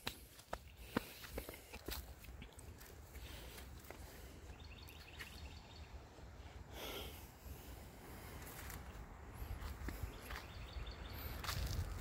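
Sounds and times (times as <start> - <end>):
footsteps on dry leaves: 11.2 - 12.0.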